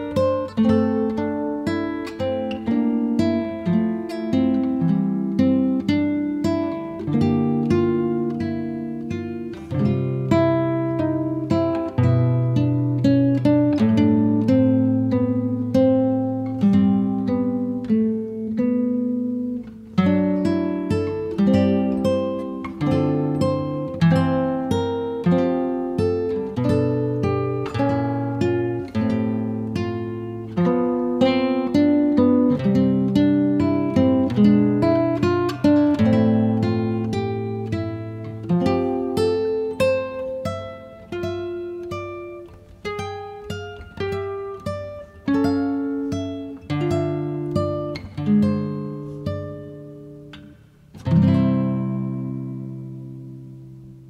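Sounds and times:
calm acoustic guitar music: 0:00.0 - 0:54.0.

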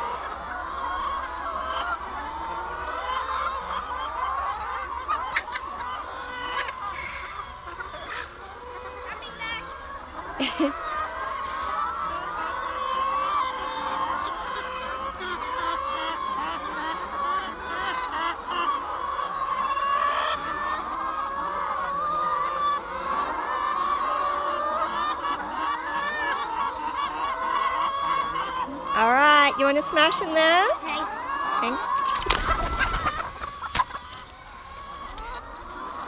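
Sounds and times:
hens clucking: 0:00.0 - 0:36.0.

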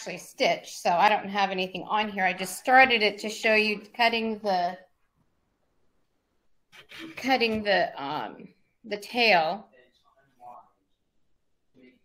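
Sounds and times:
woman's voice: 0:00.0 - 0:04.9, 0:07.0 - 0:09.6.

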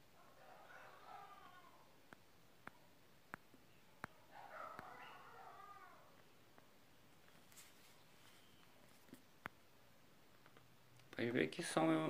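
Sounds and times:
faint animal call: 0:00.2 - 0:02.0, 0:04.2 - 0:06.2.

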